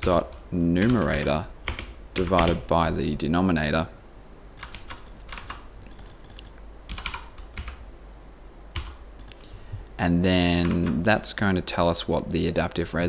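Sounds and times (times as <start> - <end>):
computer keyboard typing: 0.0 - 2.7, 4.6 - 7.8, 8.7 - 9.5, 10.5 - 11.0
steady low hum: 0.0 - 13.0.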